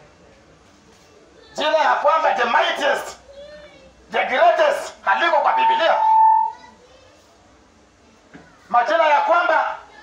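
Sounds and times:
faint background noise: 0.0s - 10.0s
man speaking through megaphone: 4.1s - 6.5s, 8.7s - 9.8s.

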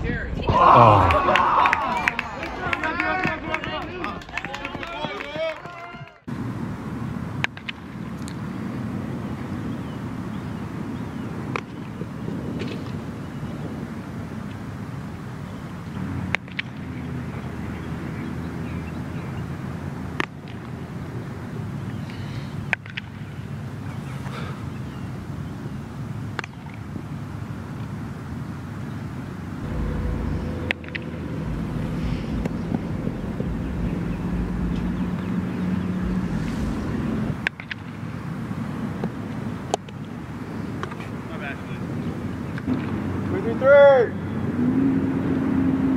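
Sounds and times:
wind on microphone: 8.4s - 15.8s, 29.5s - 39.3s
steady low hum: 29.6s - 38.2s.

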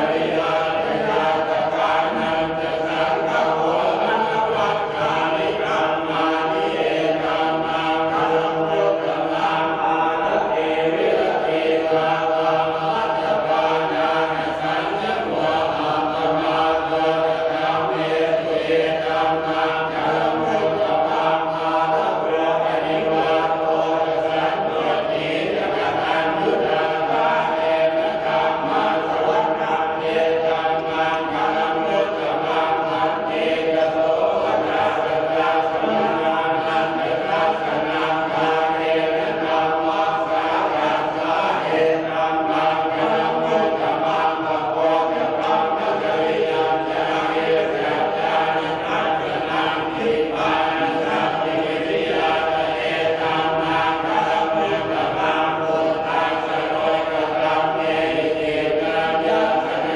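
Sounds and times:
monks chanting in unison: 0.0s - 59.9s.

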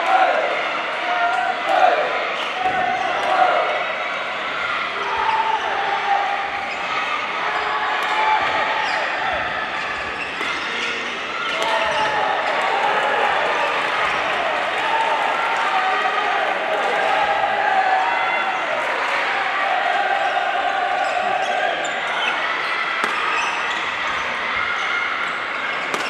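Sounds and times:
players shouting: 0.0s - 26.0s
racket hitting shuttlecock: 23.0s - 23.3s.

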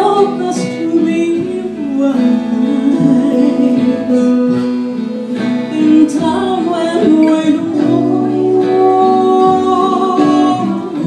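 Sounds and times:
acoustic band playing live: 0.0s - 11.0s
strummed acoustic guitar: 0.0s - 11.0s.

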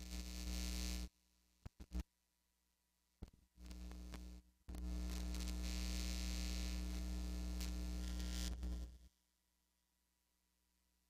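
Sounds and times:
electrical mains hum with buzz: 0.0s - 2.1s, 3.2s - 9.2s.

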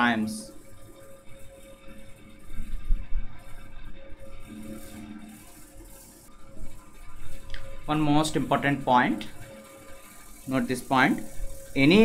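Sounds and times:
faint electrical hum: 0.0s - 12.0s
stylus scratching on tablet: 0.0s - 12.0s.

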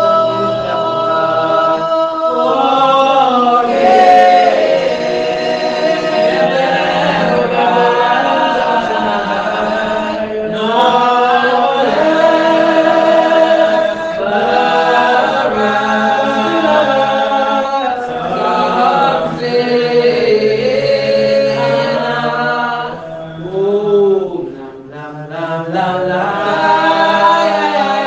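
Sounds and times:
group singing a hymn unaccompanied: 0.0s - 28.0s.

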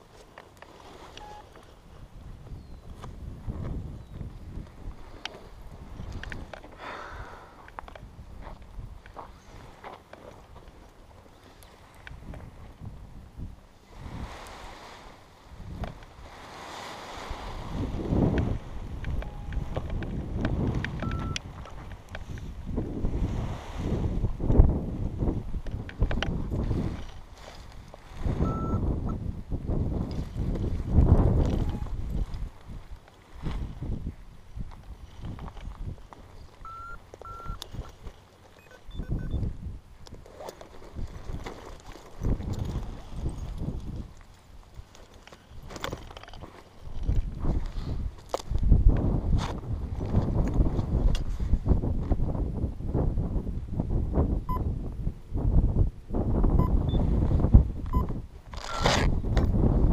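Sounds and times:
wind buffeting microphone: 0.9s - 59.9s.

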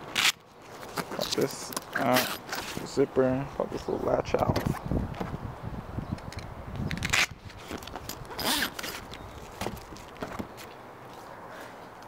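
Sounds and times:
zipper being pulled open: 0.1s - 2.8s, 6.9s - 9.1s.

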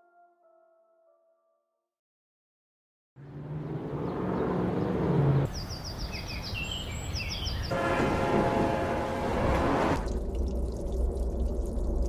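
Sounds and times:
dense rumbling noise soundscape: 9.0s - 12.0s.

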